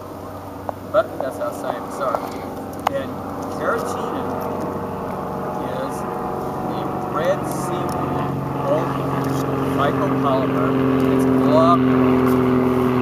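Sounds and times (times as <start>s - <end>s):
distant engine droning: 0.0s - 13.0s
faint voices: 0.9s - 12.1s.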